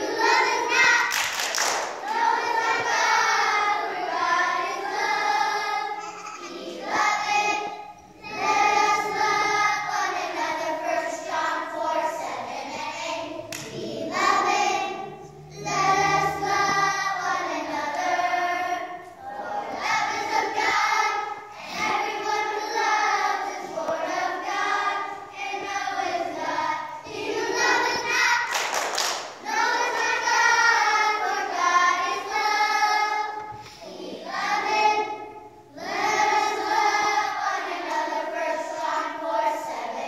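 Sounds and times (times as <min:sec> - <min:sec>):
children singing: 0:00.0 - 0:40.0.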